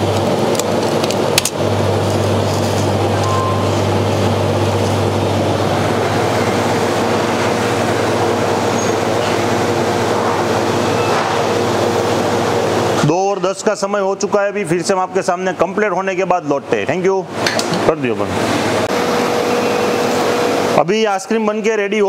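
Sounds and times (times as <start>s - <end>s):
ice cream machine humming: 0.0s - 22.0s.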